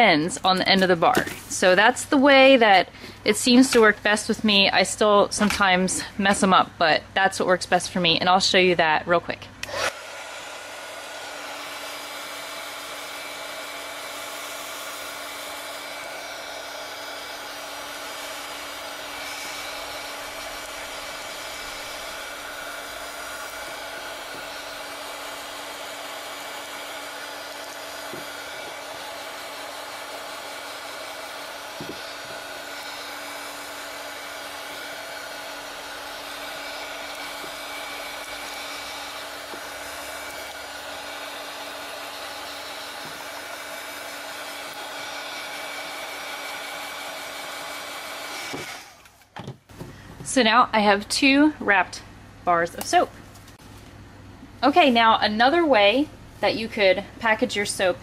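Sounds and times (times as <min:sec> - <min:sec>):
heat gun blowing: 0:00.0 - 0:06.6, 0:09.6 - 0:49.3.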